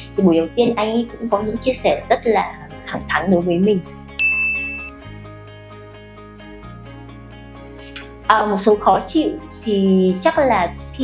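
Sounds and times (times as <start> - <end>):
soft background music: 0.0 - 11.0
bright ding: 4.2 - 5.0.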